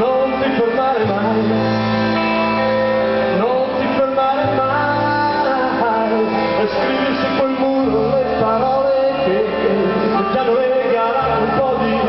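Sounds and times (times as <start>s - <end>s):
man singing: 0.0s - 12.0s
rock band playing: 0.0s - 12.0s.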